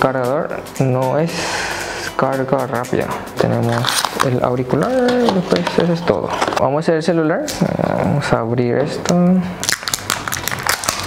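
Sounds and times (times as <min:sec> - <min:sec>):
plastic film crinkling: 0:03.6 - 0:06.6, 0:09.6 - 0:11.0.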